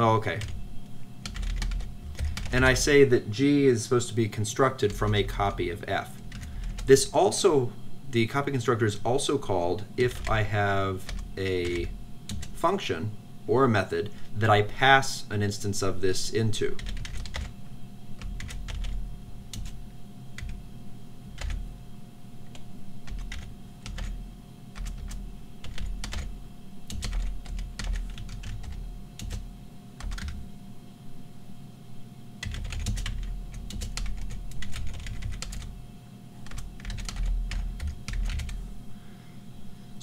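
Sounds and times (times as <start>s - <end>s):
typing on computer keyboard: 1.2s - 2.6s, 6.3s - 6.9s, 11.1s - 12.6s, 16.8s - 17.5s, 18.2s - 19.8s, 20.4s - 20.6s, 21.4s - 21.6s, 22.5s - 24.2s, 24.8s - 26.3s, 26.9s - 29.4s, 30.0s - 30.4s, 32.4s - 35.7s, 36.4s - 38.6s.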